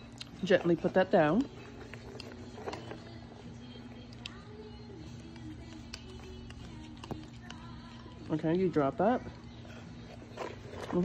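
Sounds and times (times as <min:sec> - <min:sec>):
children's song from tv: 0:00.0 - 0:11.0.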